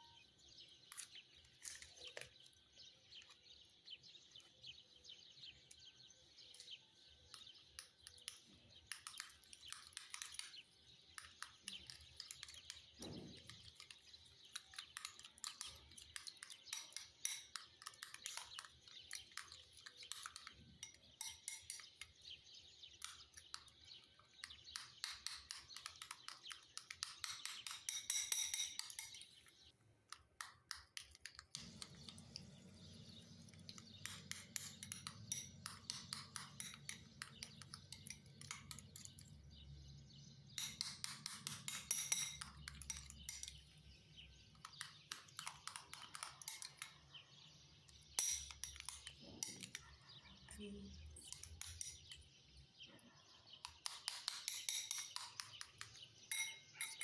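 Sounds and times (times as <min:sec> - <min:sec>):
metal spoon scraping ceramic bowl: 0:26.8 - 0:29.3, 0:33.9 - 0:39.2, 0:40.6 - 0:43.6, 0:44.7 - 0:47.0, 0:48.1 - 0:49.9, 0:53.7 - 0:57.0.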